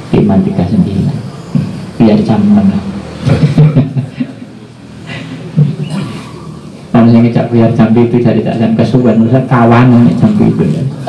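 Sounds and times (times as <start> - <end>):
man talking: 0.0 - 1.3, 2.0 - 3.0, 6.9 - 11.0.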